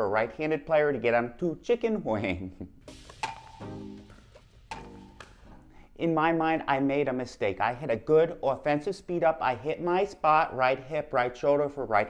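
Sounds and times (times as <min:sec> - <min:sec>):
paddle hitting ball: 0:02.9 - 0:05.8.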